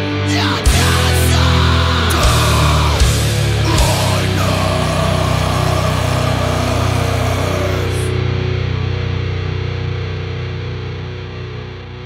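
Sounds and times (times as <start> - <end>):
distorted electric guitar chord: 0.4 - 11.8.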